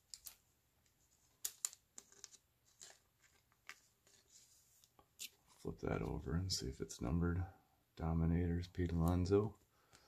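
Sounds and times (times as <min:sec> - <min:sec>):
cards being handled: 0:00.0 - 0:06.2.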